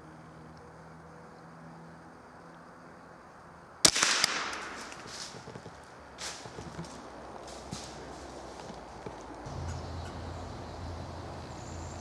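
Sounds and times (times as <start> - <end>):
rifle shots cracking: 3.8 - 5.4
rustle and echo: 3.8 - 11.5.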